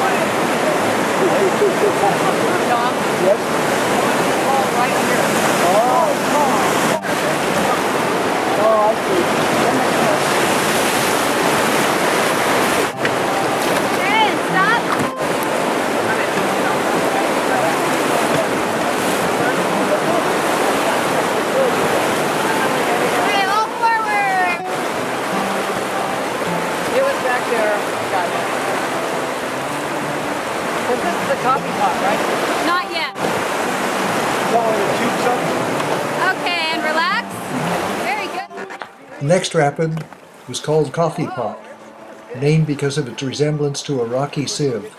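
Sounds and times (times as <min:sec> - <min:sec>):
whitewater rapid rushing: 0:00.0 - 0:44.9.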